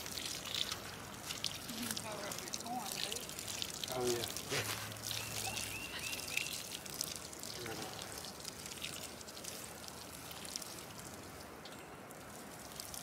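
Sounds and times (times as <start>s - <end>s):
water sprinkling onto soil: 0.0s - 13.0s.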